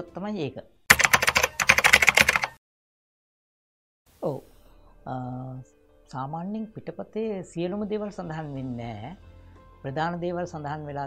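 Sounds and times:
keyboard typing clicks: 0.9 - 2.6.

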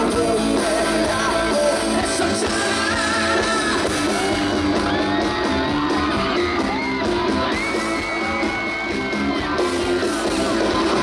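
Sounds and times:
live rock band: 0.0 - 11.0.

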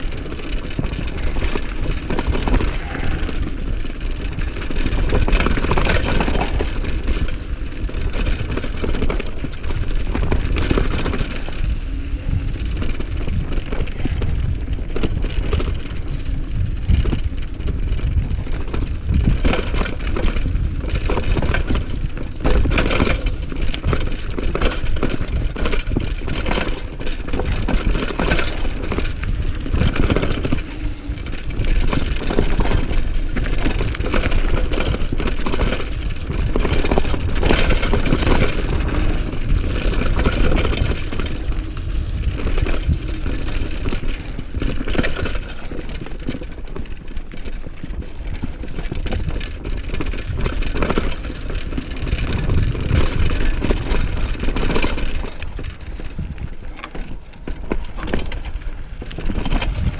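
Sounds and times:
wind on microphone: 0.0 - 46.7, 47.6 - 59.9
bike rattling and knocking: 0.0 - 59.9
tyres on dirt and stones: 0.0 - 59.9.

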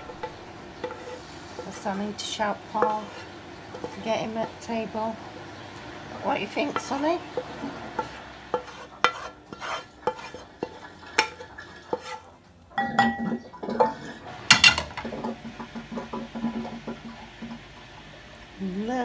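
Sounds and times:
cutlery clinking on bowl and pan: 6.8 - 15.4
cutlery clatter: 12.8 - 15.3.

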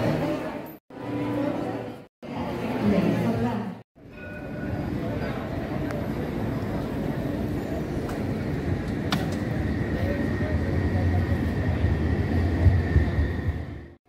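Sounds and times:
passers-by voices: 0.0 - 14.0.

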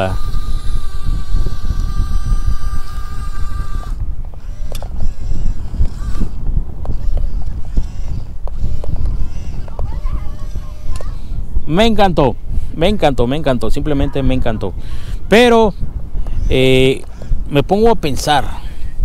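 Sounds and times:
electric motor whining: 0.0 - 11.3.

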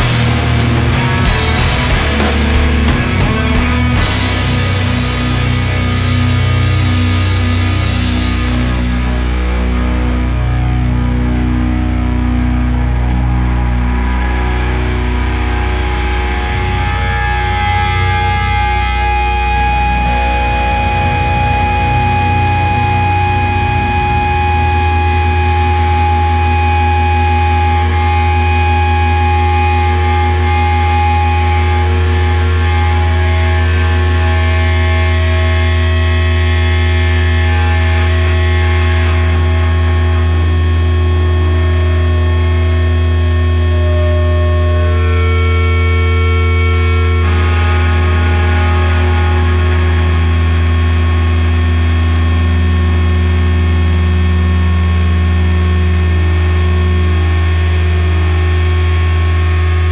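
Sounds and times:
guitar amplifier feedback: 0.0 - 59.9.

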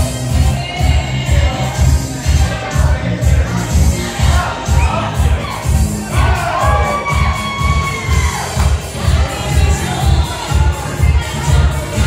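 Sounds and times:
crowd chatter and shouts: 0.0 - 12.0
dance music thumping beat: 0.0 - 12.0.

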